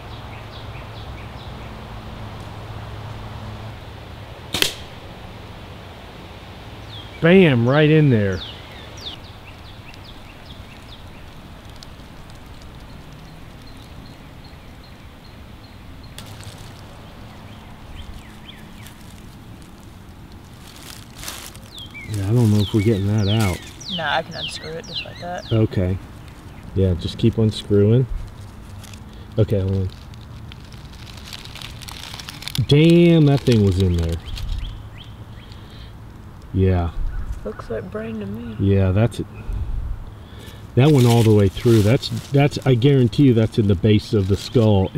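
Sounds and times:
birds chirping: 0.0 - 4.0, 6.6 - 30.2, 30.8 - 44.9
steady background hiss: 0.0 - 44.9.

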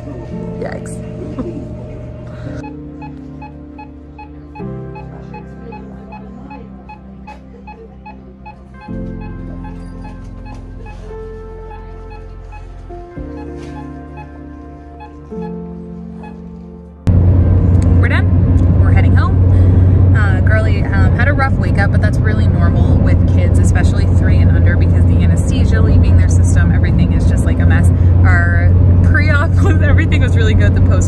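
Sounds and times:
woman talking: 0.0 - 2.6, 17.8 - 19.5, 20.1 - 31.0
car hum: 10.5 - 31.0.

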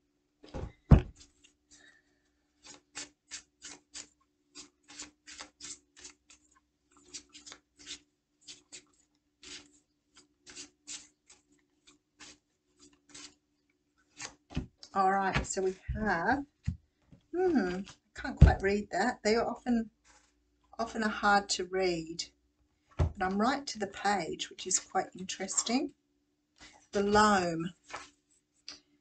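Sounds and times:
cards being shuffled: 2.6 - 13.4, 14.0 - 15.5, 27.8 - 28.2.

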